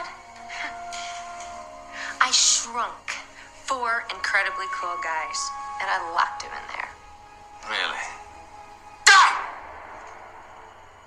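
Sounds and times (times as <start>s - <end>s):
soft background hiss: 0.0s - 11.0s
steady held tone: 0.0s - 11.0s.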